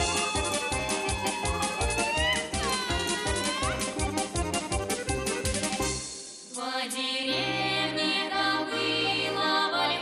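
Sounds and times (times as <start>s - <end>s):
lively folk dance music: 0.0s - 10.0s.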